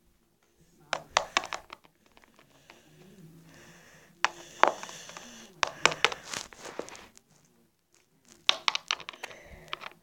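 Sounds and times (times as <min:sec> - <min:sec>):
plastic figurines clicking on wood: 0:00.9 - 0:02.9, 0:04.2 - 0:07.0, 0:08.4 - 0:10.0.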